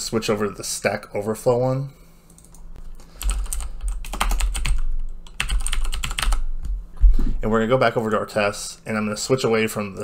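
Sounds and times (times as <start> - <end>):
rapid keyboard typing: 2.3 - 6.5.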